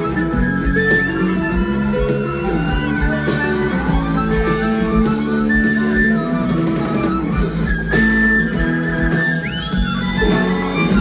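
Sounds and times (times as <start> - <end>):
fast harmonica solo: 0.0 - 11.0
rock band playing: 0.0 - 11.0.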